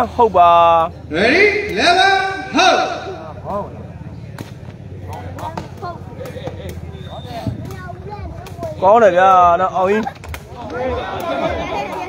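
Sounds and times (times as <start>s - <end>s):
crowd chatter: 0.0s - 12.0s
ball kicked with sharp knocks: 4.3s - 11.5s.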